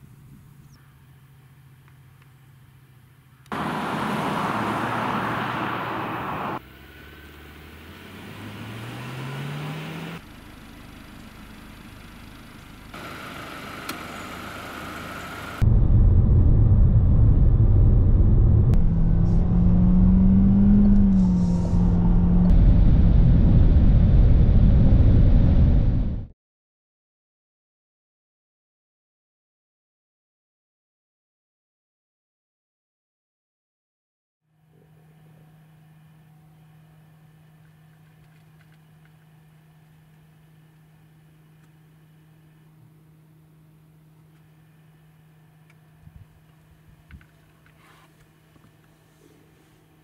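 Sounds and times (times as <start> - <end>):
car running at high speed: 3.4 - 15.7, 16.8 - 26.3
car engine revving: 3.5 - 10.3, 18.1 - 22.7.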